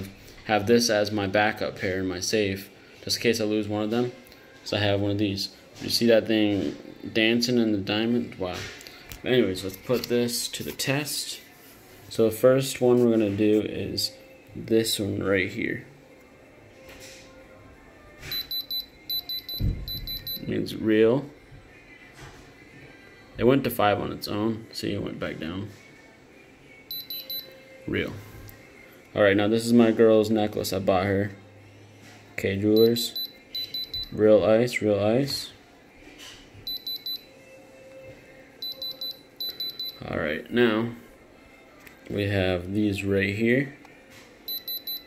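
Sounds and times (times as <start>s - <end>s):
high-pitched electronic beeps: 18.3s - 20.5s, 32.8s - 34.2s.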